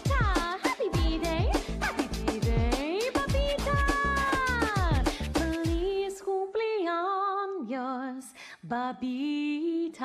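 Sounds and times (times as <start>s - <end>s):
drum beat: 0.0s - 5.8s.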